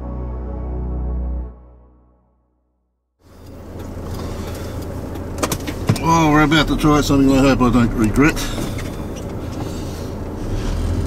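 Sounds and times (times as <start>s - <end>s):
engine and tyre rumble: 3.2s - 11.0s.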